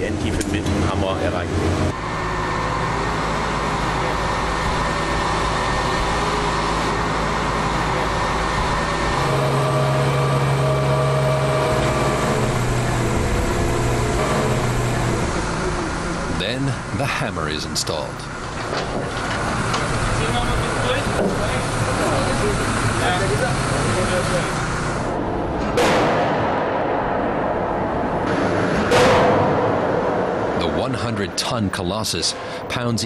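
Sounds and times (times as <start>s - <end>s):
heavy machinery droning: 0.0s - 33.0s.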